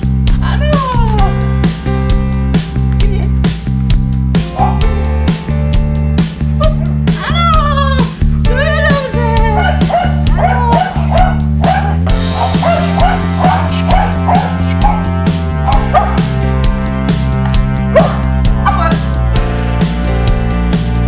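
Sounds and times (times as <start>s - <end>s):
background music with steady beat: 0.0s - 21.0s
puppy yipping and barking: 9.6s - 15.1s.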